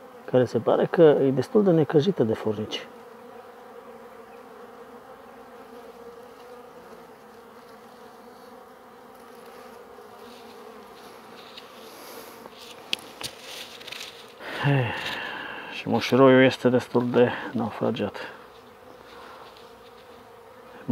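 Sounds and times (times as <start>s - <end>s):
bee swarm buzzing: 0.0s - 20.9s.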